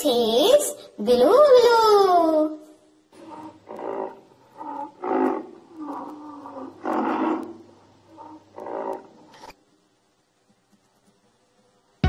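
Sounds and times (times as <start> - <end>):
rhinoceros bellowing: 3.2 - 9.5.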